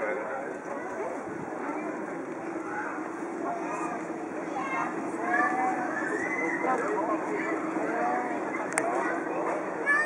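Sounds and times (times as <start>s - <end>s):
people chatting: 0.0s - 10.0s
steady low hum: 0.0s - 10.0s.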